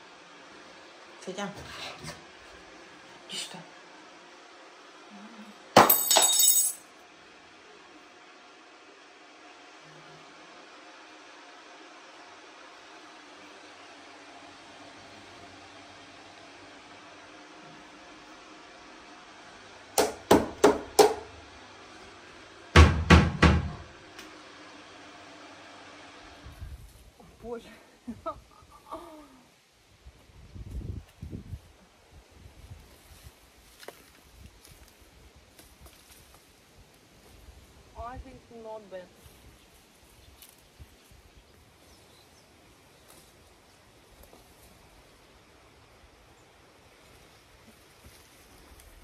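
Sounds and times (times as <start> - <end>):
faint steady hum: 0.0 - 49.0.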